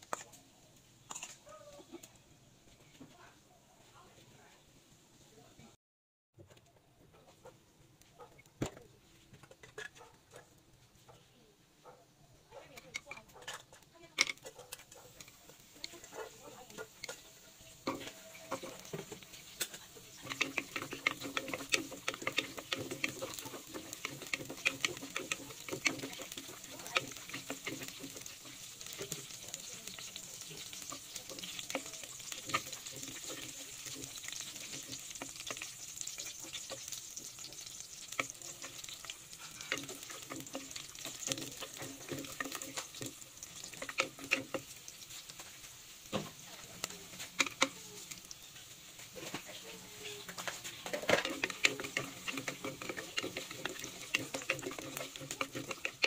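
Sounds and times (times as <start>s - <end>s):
spices sizzling in oil: 12.7s - 56.0s
wooden spoon scraping pot: 12.7s - 56.0s.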